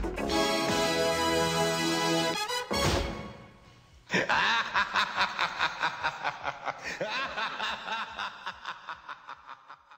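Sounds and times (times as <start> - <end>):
person laughing: 4.1 - 9.9.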